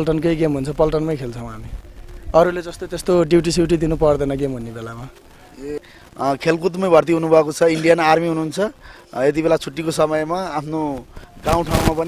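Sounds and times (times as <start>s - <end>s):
man talking: 0.0s - 12.0s.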